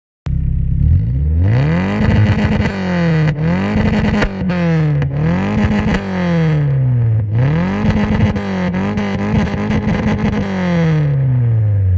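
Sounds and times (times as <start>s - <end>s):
car engine revving to limiter: 0.3s - 11.9s.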